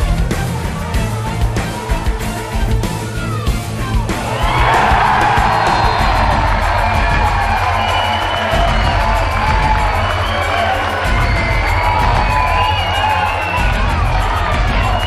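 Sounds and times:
music with steady beat: 0:00.0 - 0:15.0
crowd cheering: 0:01.6 - 0:15.0.

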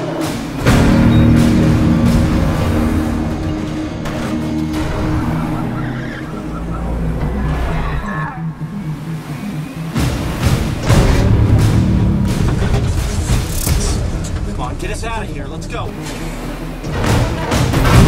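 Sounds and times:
film score low notes: 0:00.0 - 0:18.0
heavy truck engine and road noise: 0:00.0 - 0:18.0.

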